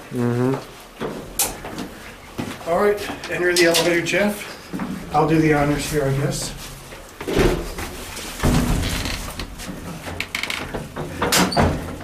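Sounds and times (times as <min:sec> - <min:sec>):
heavy elevator door thump: 0:04.8 - 0:10.3.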